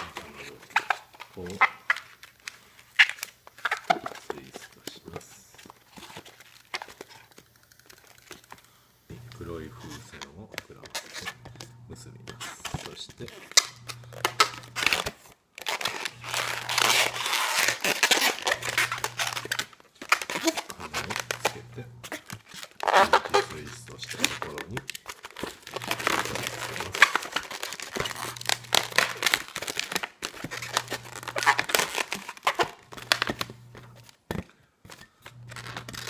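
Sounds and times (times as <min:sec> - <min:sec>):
balloon rubber squeaking: 0:00.0 - 0:36.0.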